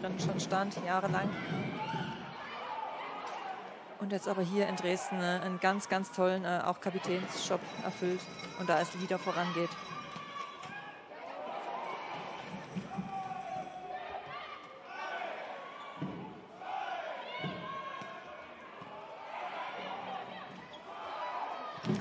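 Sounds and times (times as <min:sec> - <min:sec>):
players shouting: 0:06.8 - 0:22.0.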